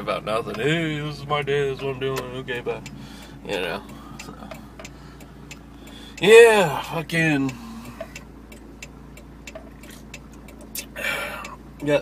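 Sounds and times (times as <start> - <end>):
truck engine rumble: 0.0 - 12.0
light clicks and ticks: 1.8 - 6.3, 7.1 - 12.0.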